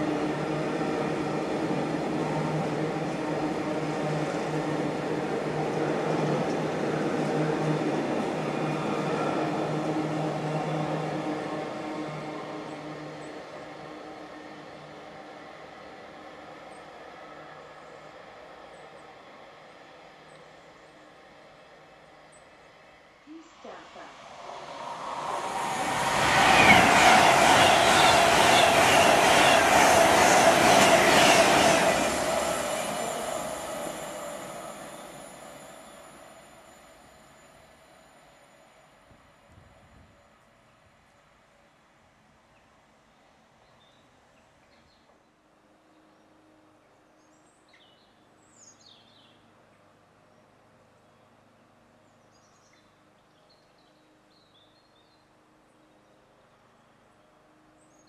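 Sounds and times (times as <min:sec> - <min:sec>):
freight train running: 0:00.0 - 0:40.8
electric train passing at speed: 0:00.0 - 0:43.4.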